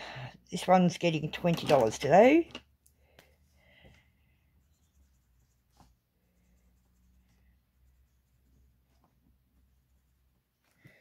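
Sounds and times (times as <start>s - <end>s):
felt-tip marker strokes: 3.4s - 10.8s.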